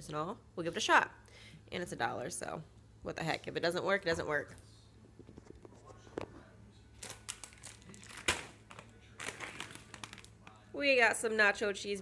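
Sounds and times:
plastic packaging crinkling: 7.0s - 10.6s.

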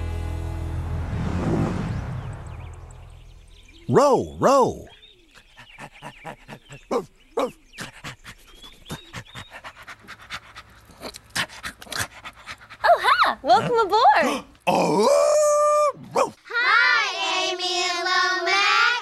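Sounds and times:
rising and falling vocal sound: 0.6s - 3.1s
dog panting: 5.3s - 13.1s.

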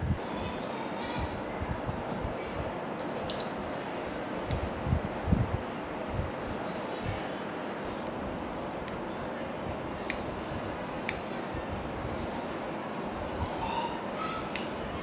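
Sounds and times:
steady background hiss: 0.0s - 15.0s
sharp clicks: 14.5s - 14.8s.

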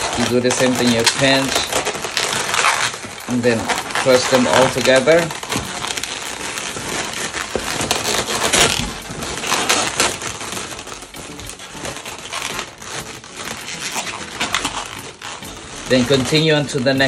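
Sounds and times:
balloons squeaking and crackling: 0.0s - 17.0s.

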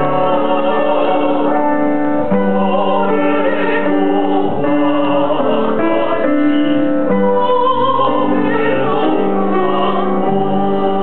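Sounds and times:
man and woman singing duet: 0.0s - 11.0s
piano accompaniment: 0.0s - 11.0s.

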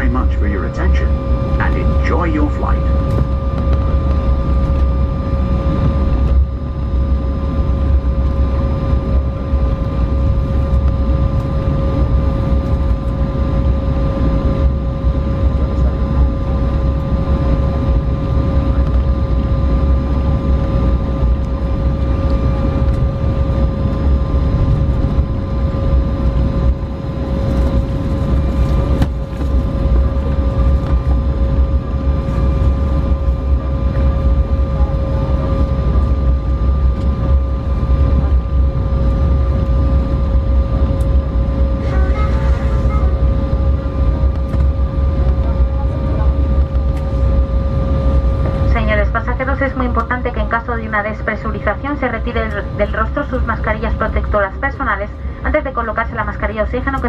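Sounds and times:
constant two-pitch hum: 0.0s - 57.0s
jet engines rumbling: 0.0s - 57.0s.

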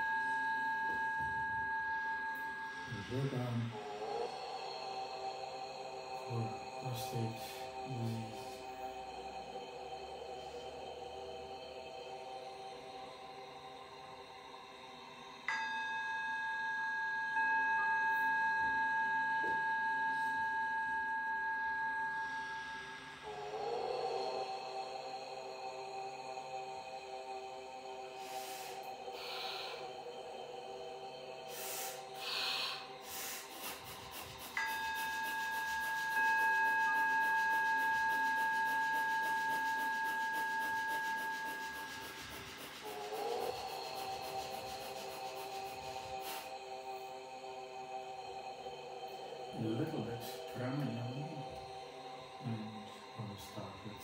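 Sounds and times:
ambient music with ringing tones: 0.0s - 54.0s.

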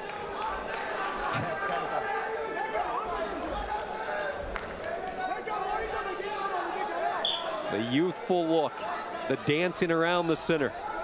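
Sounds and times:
crowd chattering and calling out: 0.8s - 11.0s.

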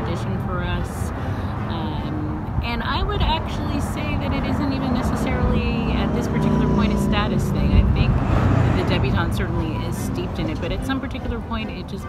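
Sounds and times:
steady low rumble: 0.0s - 11.9s
woman talking: 0.0s - 12.0s.

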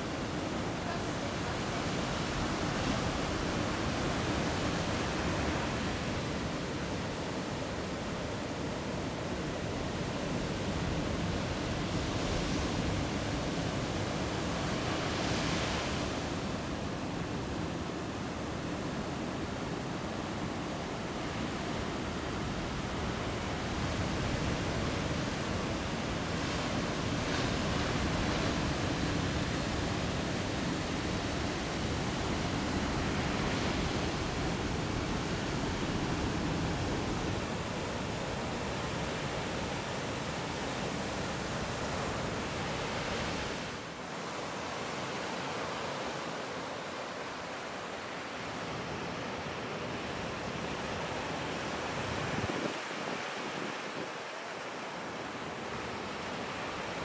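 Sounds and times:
waves breaking and washing in: 0.0s - 57.0s.

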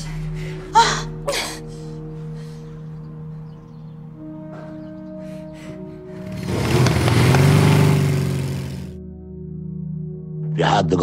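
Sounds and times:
motorcycle engine accelerating: 6.2s - 9.0s.

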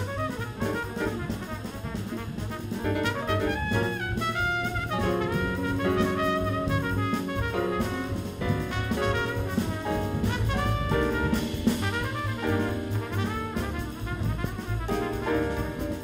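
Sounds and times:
guitar: 0.0s - 4.4s, 5.0s - 13.2s
double bass: 0.0s - 16.0s
drum kit: 0.0s - 16.0s
piano: 0.0s - 16.0s
trumpet melody: 0.0s - 16.0s.

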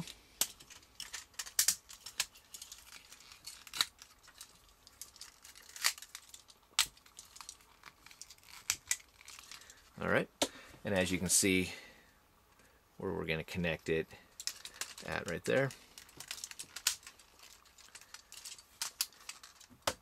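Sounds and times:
plastic toy parts clicking: 0.0s - 9.5s, 16.0s - 20.0s
soft handling rustle: 0.0s - 11.7s, 13.5s - 19.8s.

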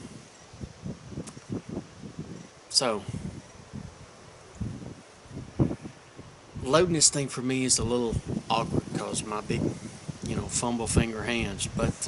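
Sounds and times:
wind rustling leaves: 0.0s - 12.0s.

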